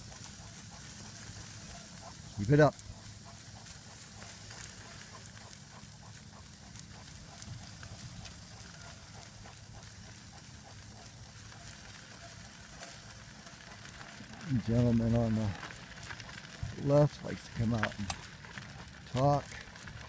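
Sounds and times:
cart wheels rumbling on dirt road: 0.0s - 20.0s.

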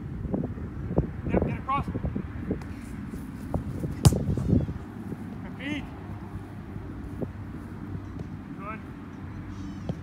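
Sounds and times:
ball kicked thuds: 3.8s - 4.6s.

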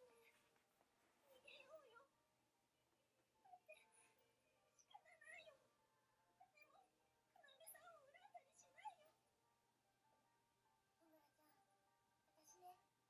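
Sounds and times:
girl speaking faintly: 1.2s - 2.1s.

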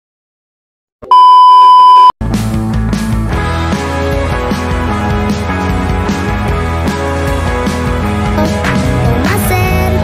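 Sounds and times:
test tone beep: 1.0s - 2.1s
music: 2.2s - 10.0s.

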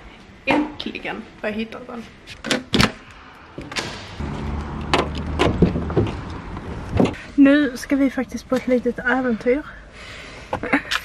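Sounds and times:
doors opening and shutting: 2.3s - 7.2s.

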